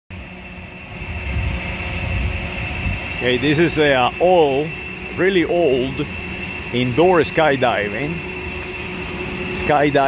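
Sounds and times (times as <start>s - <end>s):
large fans rushing: 0.1s - 10.0s
thin high whine: 0.1s - 10.0s
low uneven rumble: 0.2s - 10.0s.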